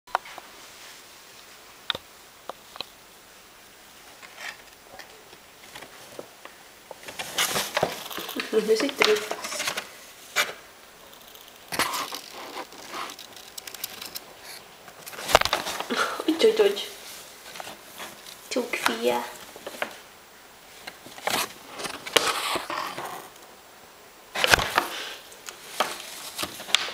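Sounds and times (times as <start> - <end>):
paper bags rustling: 5.6 - 20.1, 20.7 - 23.4, 24.3 - 26.9.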